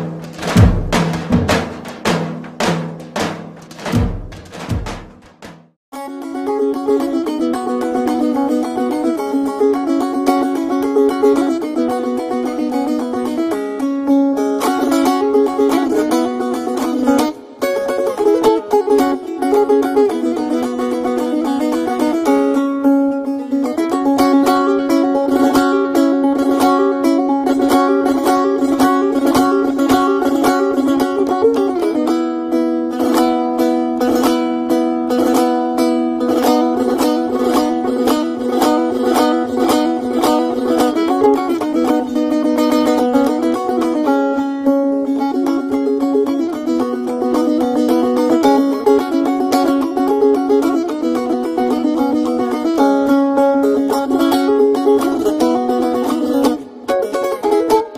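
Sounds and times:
plucked string notes: 0:00.0 - 0:57.9.

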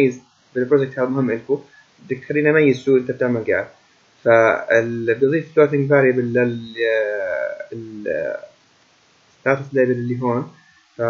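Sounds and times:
man speaking: 0:00.0 - 0:03.7, 0:04.3 - 0:08.5, 0:09.5 - 0:10.6.

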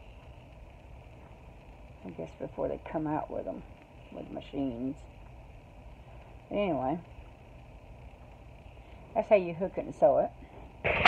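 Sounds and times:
faint low background rumble: 0:00.0 - 0:11.0.

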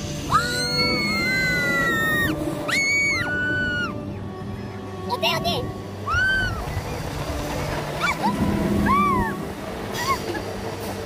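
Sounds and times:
ride passengers squealing: 0:00.0 - 0:04.2, 0:06.0 - 0:10.6.

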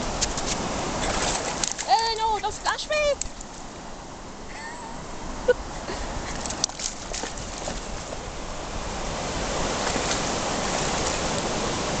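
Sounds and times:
sea surf washing over rocks: 0:00.0 - 0:12.0.

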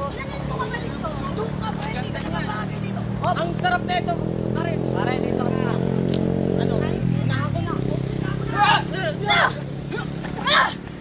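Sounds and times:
person shouting cries: 0:08.6 - 0:10.9.

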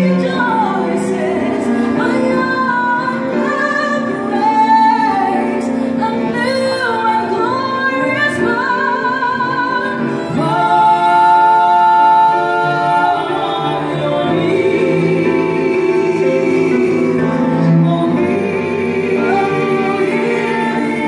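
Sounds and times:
woman singing into a microphone: 0:00.0 - 0:21.0.

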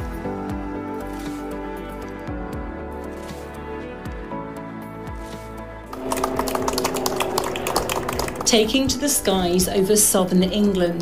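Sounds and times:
electric propeller whine: 0:05.9 - 0:09.6.

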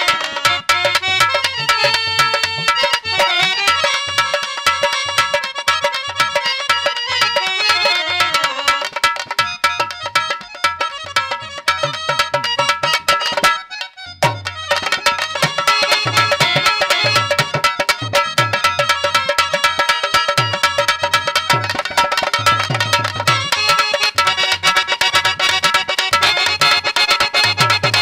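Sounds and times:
dholak hand drumming: 0:00.0 - 0:28.0
harmonium held notes: 0:00.0 - 0:28.0.

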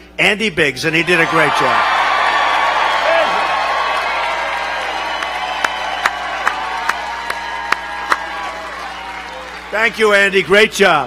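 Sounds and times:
crowd cheering and applauding: 0:01.0 - 0:10.7
sharp claps close to microphone: 0:04.8 - 0:09.6.

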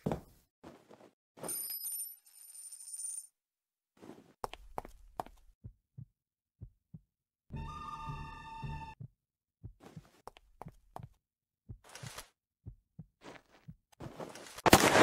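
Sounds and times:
coin ringing on a counter: 0:01.6 - 0:03.3.

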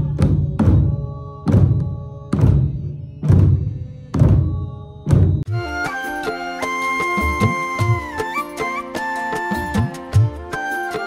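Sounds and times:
temple drums beating slowly: 0:00.0 - 0:05.7.

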